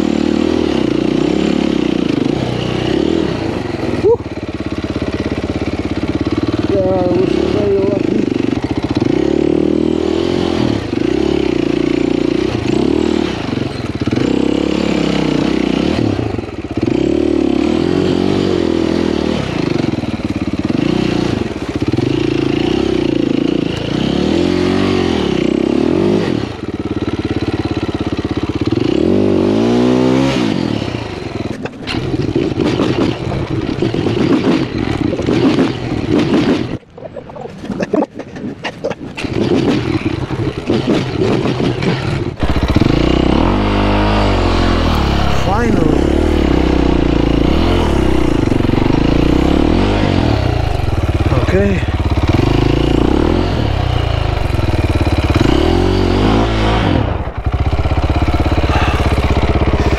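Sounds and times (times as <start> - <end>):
dirt bike engine revving: 0.0 - 36.8, 38.5 - 59.9.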